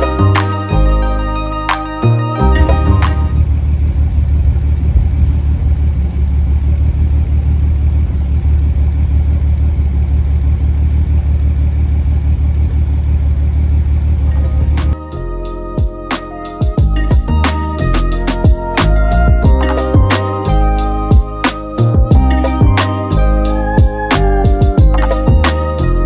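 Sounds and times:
background music: 0:00.0 - 0:03.4, 0:14.2 - 0:26.0
car engine lumpy idle: 0:02.6 - 0:15.0.

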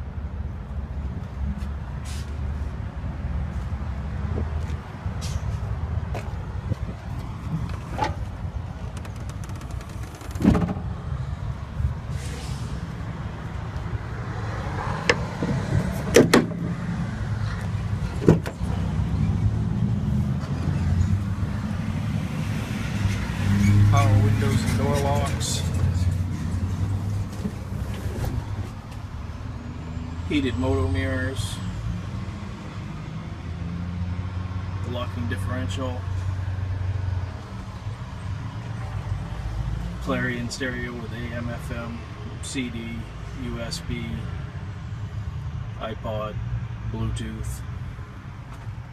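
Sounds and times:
car door latch clicks: 0:07.7 - 0:10.8, 0:16.1 - 0:16.6, 0:18.2 - 0:18.6.

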